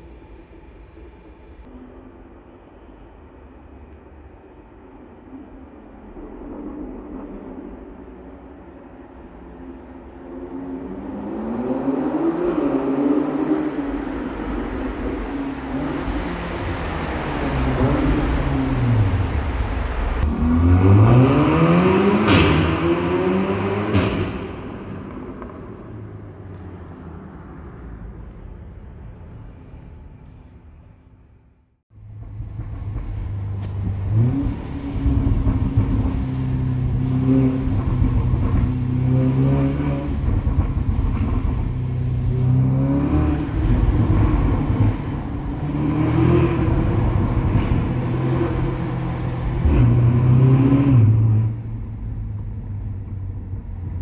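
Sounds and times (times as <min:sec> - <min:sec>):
car accelerating in tunnel: 0:04.6 - 0:54.0
exhaust cracks: 0:32.0 - 0:42.7.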